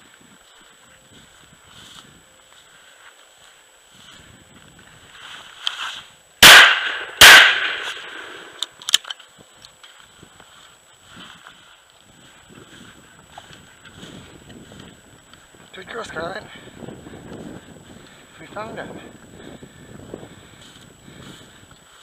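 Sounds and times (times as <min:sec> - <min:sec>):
shotgun fired: 0:06.4 - 0:08.6.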